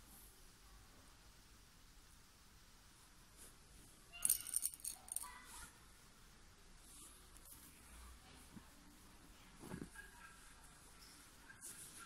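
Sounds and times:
beads rattling and clicking: 4.2 - 5.3.

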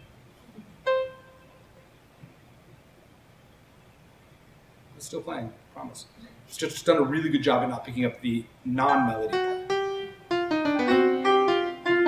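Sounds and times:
faint hum: 0.0 - 12.0
synthesized note: 8.9 - 12.0.

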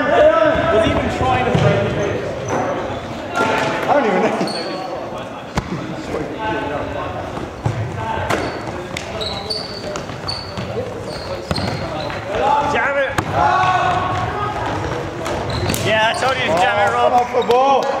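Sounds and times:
trainers squeaking on wooden floor: 7.3 - 12.9, 13.5 - 17.8
people shouting: 12.4 - 14.8.

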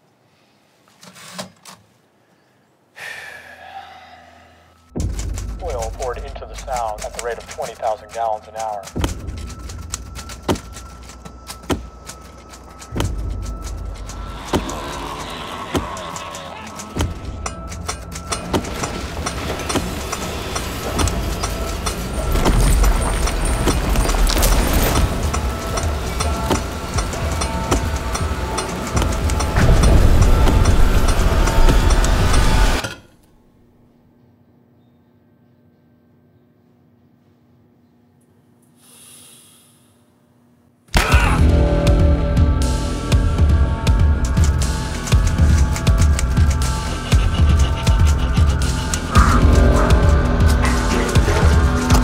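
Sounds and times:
trailer music with sharp hits: 8.9 - 32.8, 41.0 - 52.0.

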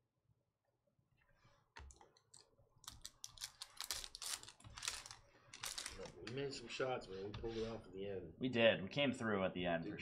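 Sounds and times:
cards being handled: 1.8 - 6.4
foil card pack crinkling and tearing: 3.0 - 6.1.

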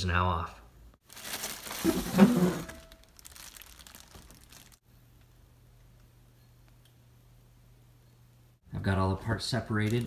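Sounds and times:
plastic wrap crinkling: 1.0 - 4.8, 9.6 - 10.0.

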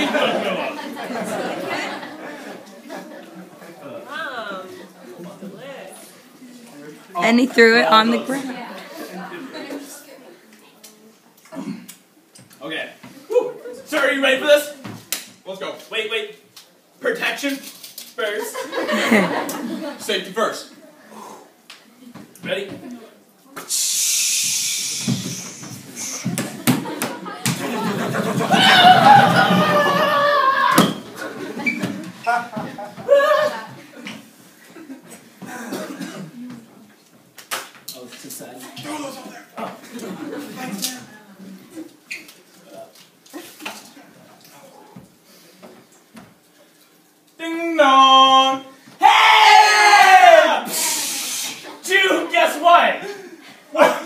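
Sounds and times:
loud hiss: 23.7 - 26.4, 50.6 - 51.8.

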